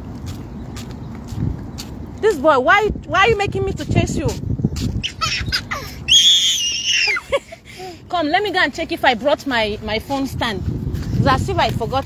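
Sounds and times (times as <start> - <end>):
small child squealing: 5.0 - 7.4.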